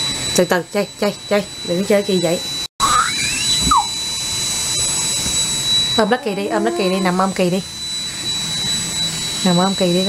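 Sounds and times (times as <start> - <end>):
thin high whine: 2.8 - 10.0.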